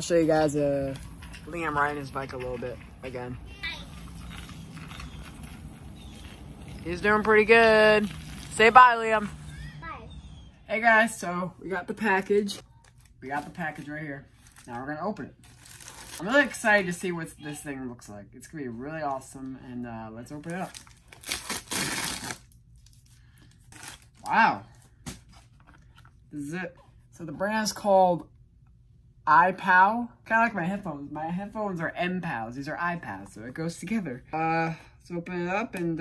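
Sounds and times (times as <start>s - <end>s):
packaging rustling: 15.4s - 16.4s
mailer tearing open: 20.6s - 22.6s.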